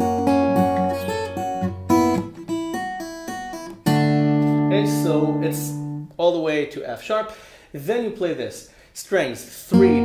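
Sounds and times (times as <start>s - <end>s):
acoustic guitar fingerpicking: 0.0s - 6.1s, 9.7s - 10.0s.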